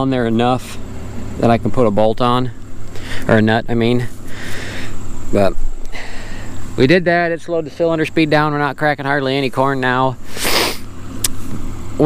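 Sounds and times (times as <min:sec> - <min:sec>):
combine engine idling: 0:00.0 - 0:12.0
short rushing hiss: 0:10.2 - 0:11.7
faint click: 0:11.2 - 0:11.6.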